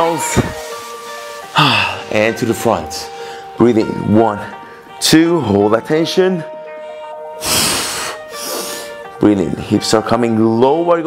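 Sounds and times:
background music: 0.0 - 11.0
man breathing heavily: 1.5 - 2.1, 3.1 - 3.6, 6.6 - 9.0.

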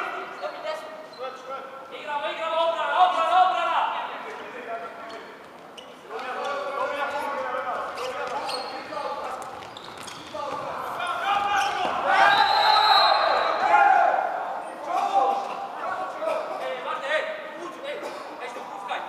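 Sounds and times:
players calling out: 6.2 - 16.6.

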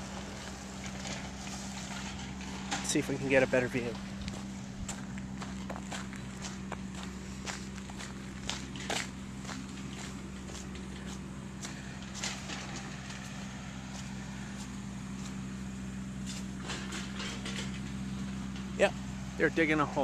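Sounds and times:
low engine drone: 0.0 - 20.0
footsteps walking: 3.9 - 16.6.

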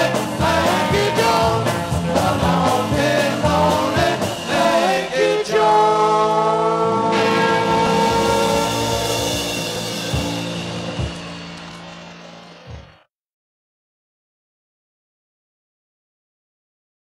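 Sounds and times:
rock band chord ringing: 0.0 - 5.4, 6.8 - 13.0.

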